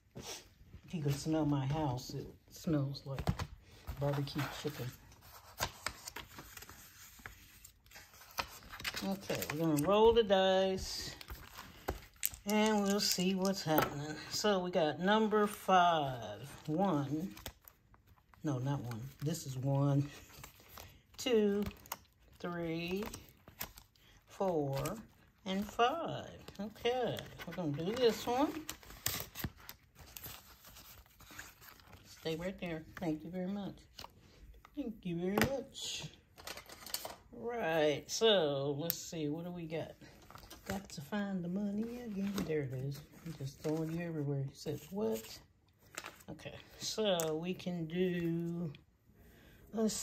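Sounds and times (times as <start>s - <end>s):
paper rustling: 2.7s - 14.4s, 15.4s - 34.2s, 40.0s - 47.4s.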